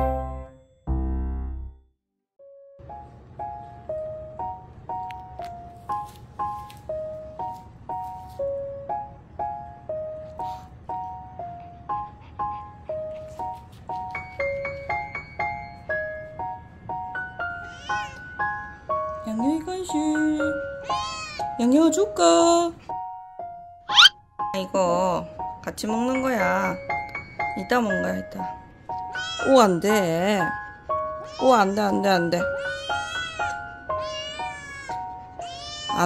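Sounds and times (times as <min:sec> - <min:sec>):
background music held notes: 0:00.0 - 0:01.8
background music of bright notes: 0:00.0 - 0:01.8, 0:02.5 - 0:36.0
kitten mewing: 0:23.9 - 0:24.1.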